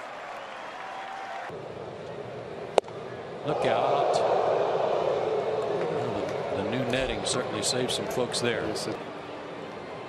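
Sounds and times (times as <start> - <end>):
stadium crowd hubbub: 4.8 - 10.0.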